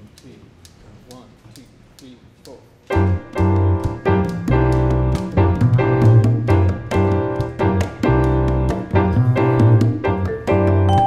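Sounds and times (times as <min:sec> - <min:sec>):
latin jazz band playing: 0:02.9 - 0:11.0.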